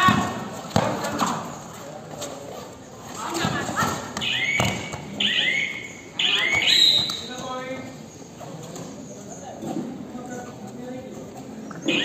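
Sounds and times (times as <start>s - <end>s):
sports shoes squeaking on mat: 2.6s - 12.0s.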